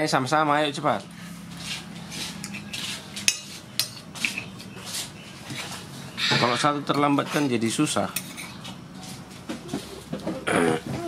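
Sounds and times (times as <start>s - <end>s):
cutlery clinking on a plate: 2.4s - 4.5s, 8.1s - 8.7s.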